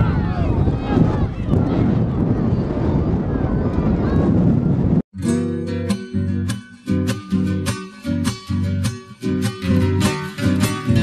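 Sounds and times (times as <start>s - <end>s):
strummed acoustic guitar: 5.2s - 11.0s.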